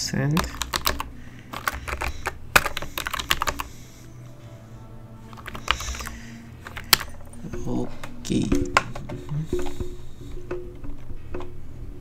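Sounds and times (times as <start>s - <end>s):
typing on computer keyboard: 0.3s - 3.7s, 5.3s - 7.3s.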